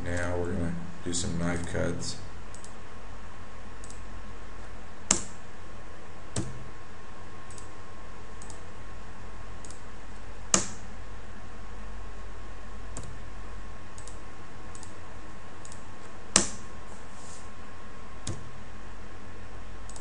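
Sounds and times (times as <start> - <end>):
low hum and hiss: 0.0 - 20.0
computer mouse clicking: 2.5 - 2.8, 7.5 - 7.7, 8.4 - 8.6, 14.0 - 15.0, 15.6 - 15.8.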